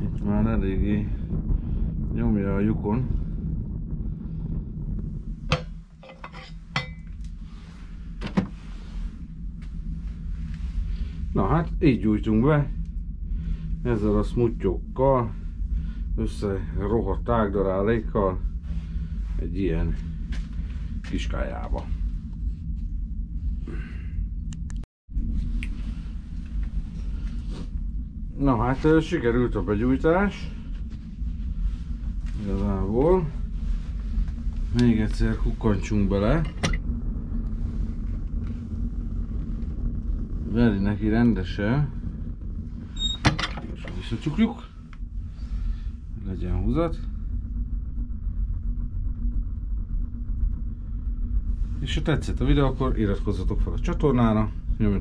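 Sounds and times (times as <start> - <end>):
fire crackles: 0.0 - 55.0
stove fire rumbling: 0.0 - 55.0.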